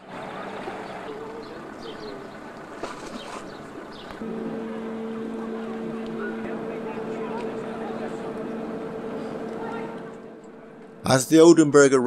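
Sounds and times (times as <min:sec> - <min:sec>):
ship engine rumble: 0:00.0 - 0:12.0
bird chirps: 0:00.8 - 0:02.5
steady low hum: 0:03.5 - 0:12.0.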